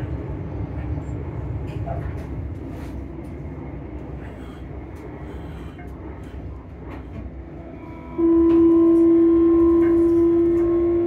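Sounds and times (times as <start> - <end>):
train rumble inside carriage: 0.0 - 11.0.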